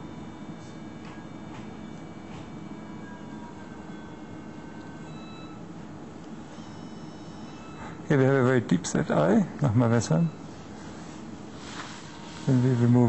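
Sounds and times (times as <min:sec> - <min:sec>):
equipment hum and hiss: 0:00.0 - 0:13.0.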